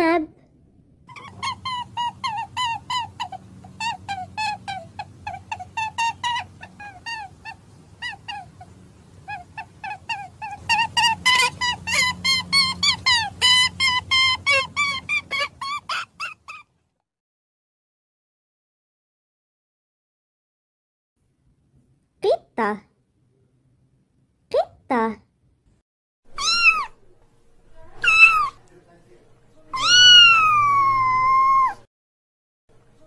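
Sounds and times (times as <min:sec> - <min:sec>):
steady low hum: 0:00.3 - 0:15.6
small animal squeaking: 0:01.1 - 0:16.7, 0:26.3 - 0:27.0, 0:27.8 - 0:28.6, 0:29.7 - 0:31.8.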